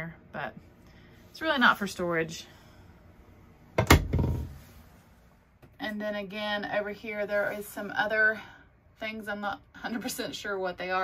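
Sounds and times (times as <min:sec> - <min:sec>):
cabinet door knocking shut: 0:03.8 - 0:04.6.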